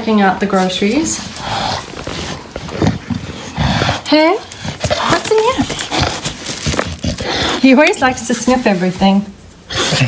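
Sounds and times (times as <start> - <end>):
dog sniffing and snuffling: 0.8 - 10.0.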